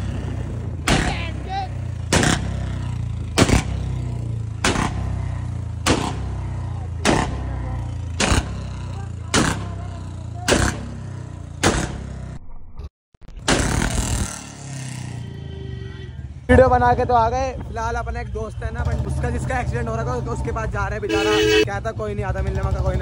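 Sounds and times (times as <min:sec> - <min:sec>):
exhaust backfire bangs: 0:00.0 - 0:12.4
motorcycle engine running: 0:00.0 - 0:12.4, 0:18.6 - 0:23.0.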